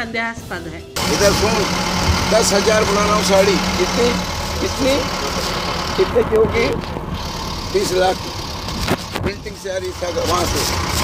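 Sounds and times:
man speaking: 0:01.0 - 0:06.9, 0:07.6 - 0:08.4, 0:09.3 - 0:10.7
vehicle engine humming: 0:01.0 - 0:11.0.

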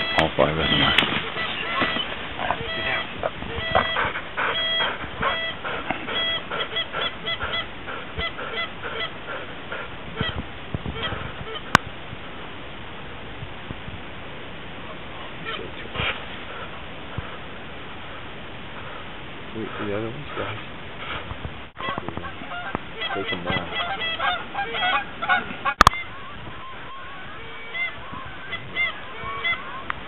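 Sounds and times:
geese honking: 0:00.0 - 0:11.8, 0:15.4 - 0:17.5, 0:21.8 - 0:30.0.

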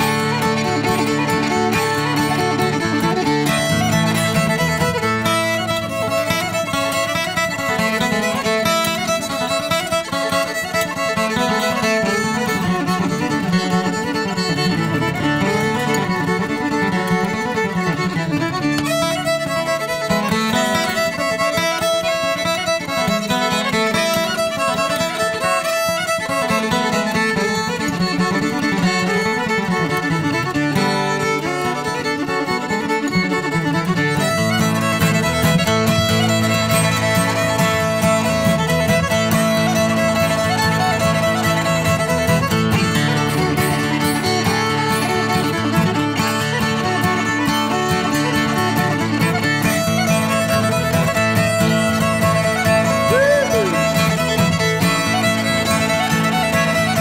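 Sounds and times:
acoustic guitar rhythm: 0:00.0 - 0:57.0
bluegrass fiddle tune: 0:00.0 - 0:57.0.

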